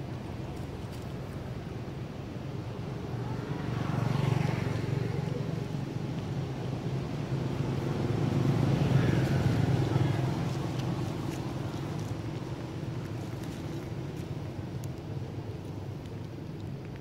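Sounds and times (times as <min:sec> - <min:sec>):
vehicles passing on road: 0:00.0 - 0:17.0.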